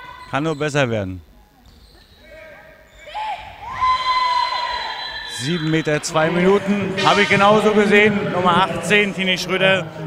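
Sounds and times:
people shouting in a sports hall: 0:02.0 - 0:10.0.

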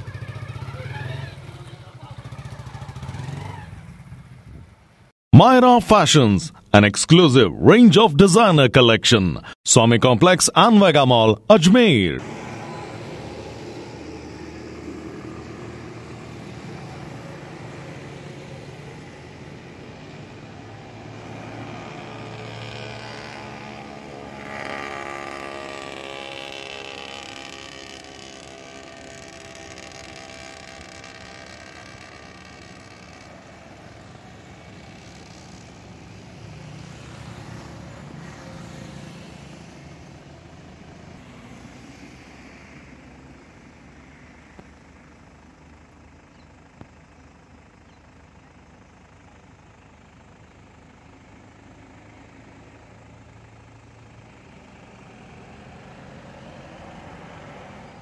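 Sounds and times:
vehicle engines humming: 0:00.0 - 0:58.0
vehicle passing: 0:12.0 - 0:44.4.

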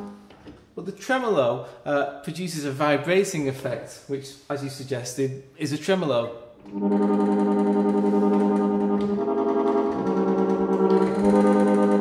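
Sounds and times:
harmonium held notes with tremolo: 0:06.7 - 0:12.0.

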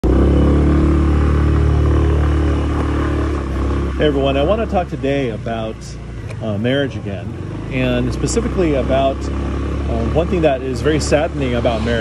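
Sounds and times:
scooter engine droning: 0:00.0 - 0:12.0.

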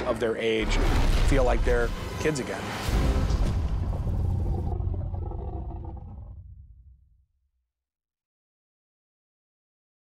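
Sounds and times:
low rumble: 0:02.8 - 0:07.2
deep dinosaur roar: 0:03.2 - 0:06.5.

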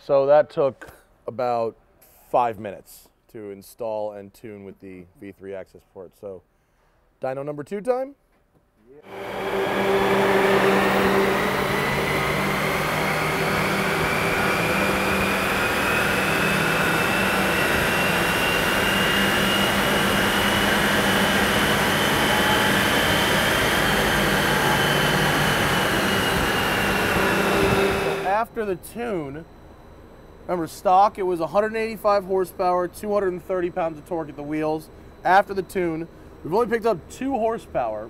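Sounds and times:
cooling fan rushing: 0:09.0 - 0:38.0
low hum: 0:09.0 - 0:38.0
thin rising whine: 0:09.0 - 0:38.0.

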